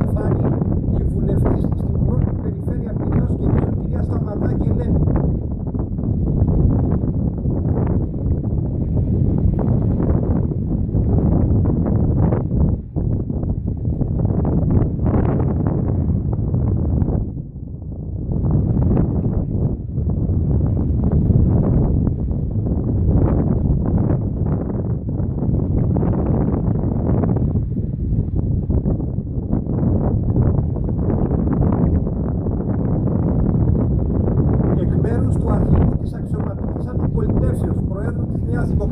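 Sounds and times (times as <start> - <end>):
wind buffeting microphone: 0.0 - 38.9.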